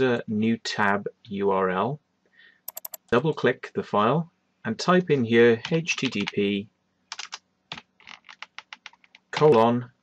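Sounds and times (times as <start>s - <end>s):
keyboard key clicks: 2.7s - 3.0s.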